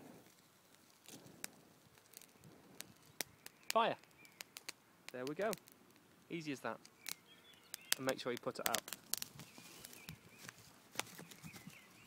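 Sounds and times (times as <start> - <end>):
bird chirping: 2.2 - 4.7, 6.0 - 12.0.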